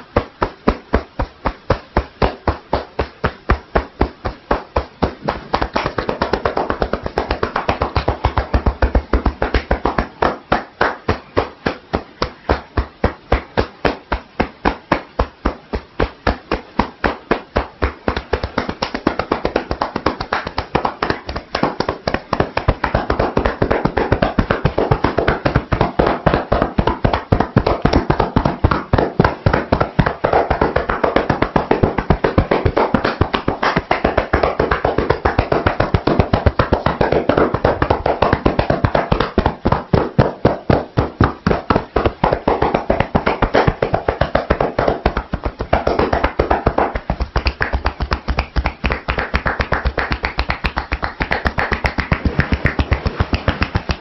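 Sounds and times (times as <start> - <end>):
hands tapping on head and shoulders: 0.0 - 54.0.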